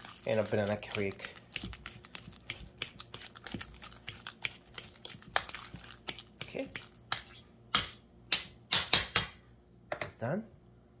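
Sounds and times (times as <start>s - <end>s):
fork mashing bananas in bowl: 0.0s - 9.0s.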